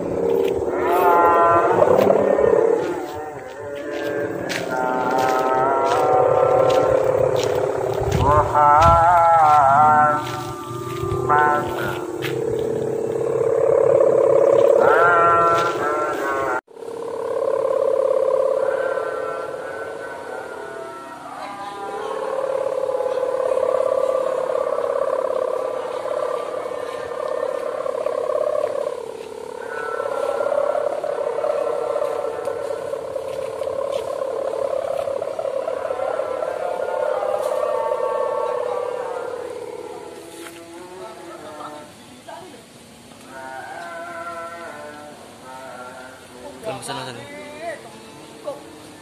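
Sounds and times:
kite hummer buzzing in wind: 0.0s - 42.0s.

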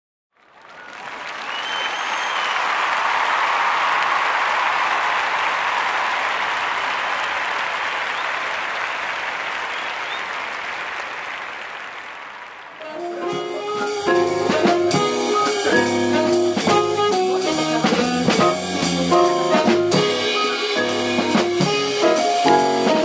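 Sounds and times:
audience applauding: 0.4s - 14.0s.

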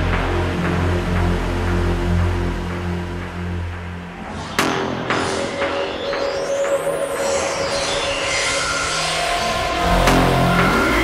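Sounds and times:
drum and bass music: 0.0s - 11.0s
low synth notes: 0.0s - 11.0s
rising rushing sweep: 6.8s - 11.0s.

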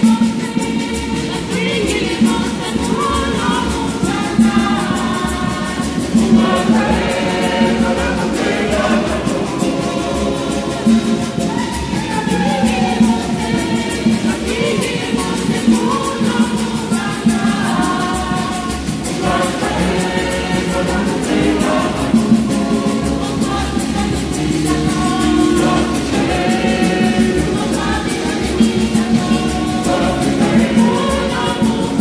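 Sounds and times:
quick even beat: 0.0s - 32.0s
women's choir singing a hymn: 0.0s - 32.0s.

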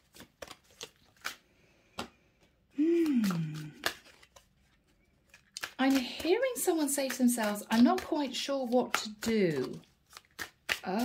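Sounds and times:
cards being shuffled: 0.0s - 11.0s.

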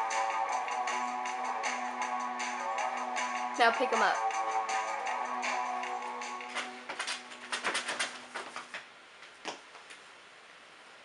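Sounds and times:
music: 0.0s - 8.3s.

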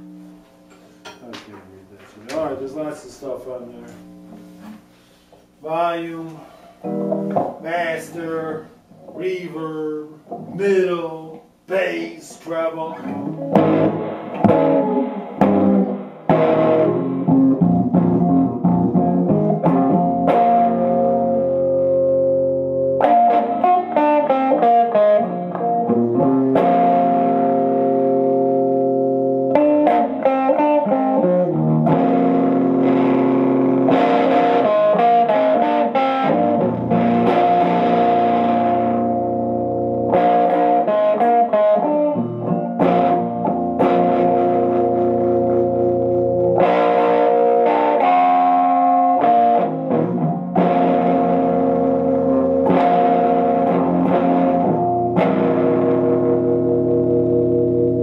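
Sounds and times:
electric guitar through amp: 5.6s - 58.0s.

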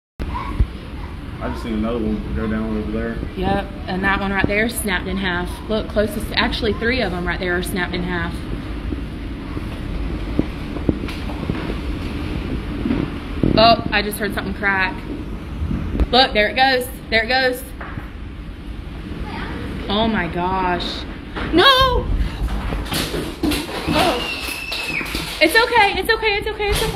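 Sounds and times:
strong wind blowing: 0.2s - 26.9s
wind buffeting microphone: 0.2s - 26.9s.

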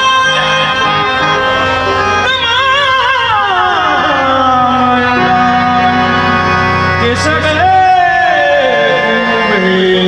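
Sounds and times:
harmonium tones: 0.0s - 10.0s
person singing ornamented melody: 2.7s - 10.0s.

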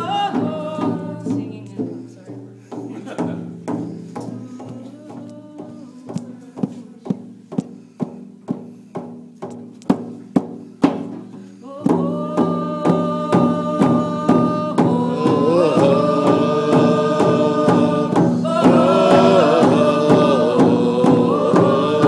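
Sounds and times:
person singing: 0.0s - 8.0s, 11.4s - 22.0s
hand drum beating: 0.0s - 22.0s.

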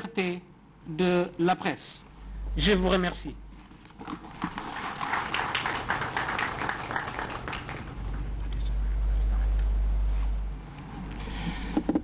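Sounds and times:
audience applauding: 4.2s - 8.4s.

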